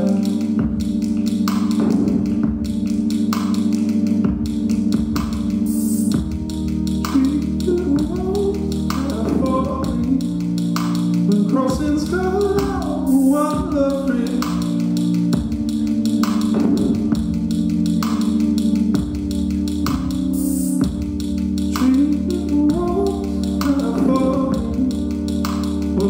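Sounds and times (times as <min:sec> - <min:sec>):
clicking beat: 0:00.0 - 0:26.0
deep bass line: 0:00.0 - 0:26.0
sustained keyboard chords: 0:00.0 - 0:26.0.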